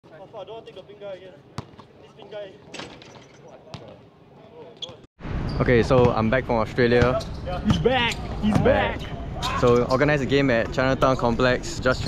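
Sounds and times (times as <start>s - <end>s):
men talking: 0.0s - 5.0s, 5.6s - 12.0s
basketball bouncing on hard court: 1.6s - 1.8s.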